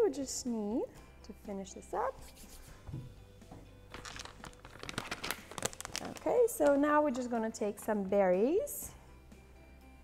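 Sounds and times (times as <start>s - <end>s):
soft background music: 0.0s - 10.0s
plastic pouch crinkling: 3.9s - 6.8s.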